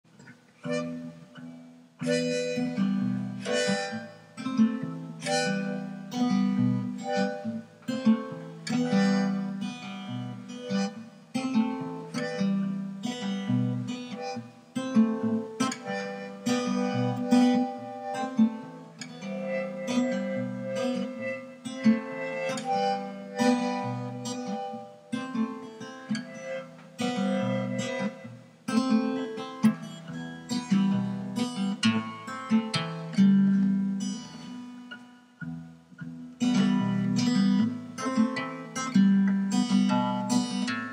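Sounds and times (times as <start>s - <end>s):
acoustic guitar strumming: 0.1s - 40.9s.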